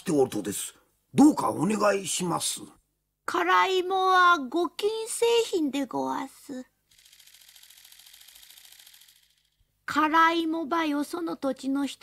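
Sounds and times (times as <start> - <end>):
faint rapid clicks: 6.9 - 9.6.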